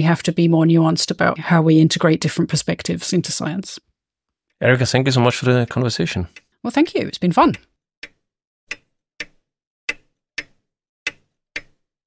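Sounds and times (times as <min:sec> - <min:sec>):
clock ticking: 0:04.6 - 0:11.8.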